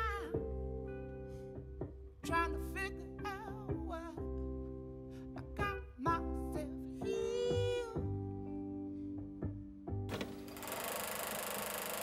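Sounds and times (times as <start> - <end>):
fast mechanical clatter with hiss: 10.1 - 12.0.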